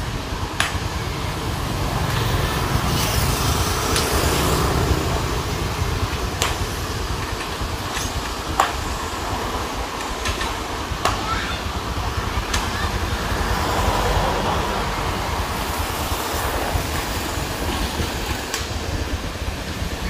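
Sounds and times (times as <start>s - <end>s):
low traffic rumble: 0.0s - 20.0s
vehicle passing: 12.8s - 18.8s.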